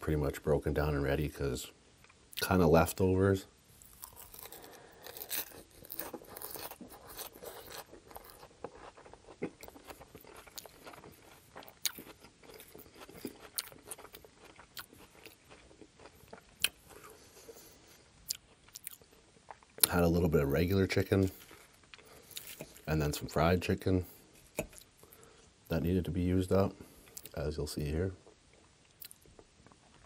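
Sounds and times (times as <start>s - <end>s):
chewing crisp lettuce: 3.8s - 23.3s.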